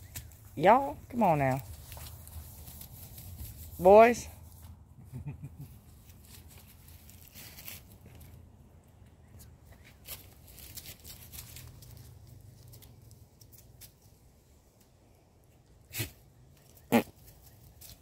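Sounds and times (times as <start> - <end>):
rustling on grass: 0.0 - 8.7, 9.4 - 14.6, 15.9 - 18.0.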